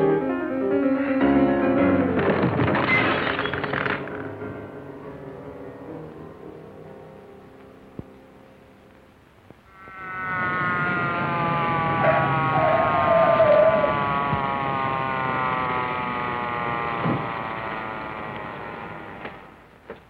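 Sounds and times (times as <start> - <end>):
police siren wailing: 9.8 - 19.6.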